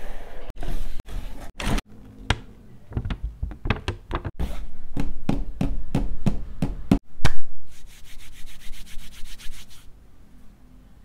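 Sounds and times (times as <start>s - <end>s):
knocks: 2.3s - 4.4s
palms rubbing together: 7.7s - 9.9s.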